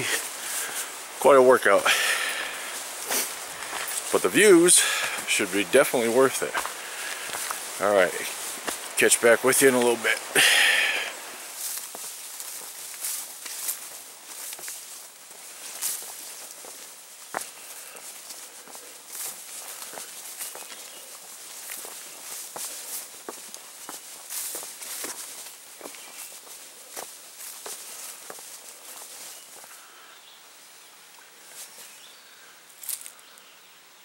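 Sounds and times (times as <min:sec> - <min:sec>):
footsteps through tall grass: 0:00.0 - 0:30.1, 0:31.4 - 0:32.2, 0:32.8 - 0:33.2
grass rustling: 0:00.0 - 0:33.4.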